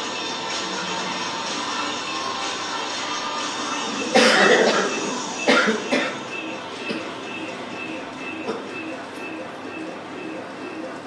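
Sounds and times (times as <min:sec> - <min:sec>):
person coughing: 0:04.1 - 0:06.2.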